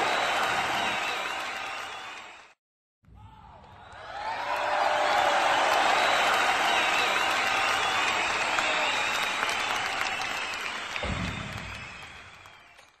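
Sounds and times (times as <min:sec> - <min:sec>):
audience applause: 0:00.0 - 0:02.6, 0:03.8 - 0:13.0.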